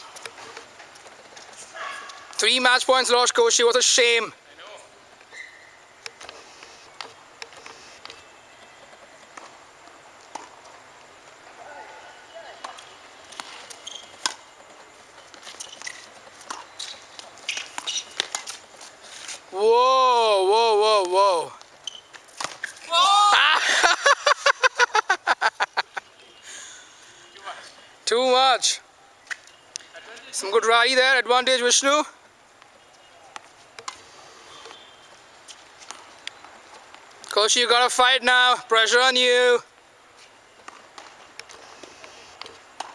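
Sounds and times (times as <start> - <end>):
tennis balls struck and bouncing: 10.3 - 10.6, 12.6 - 14.5, 15.3 - 18.6, 33.3 - 34.0.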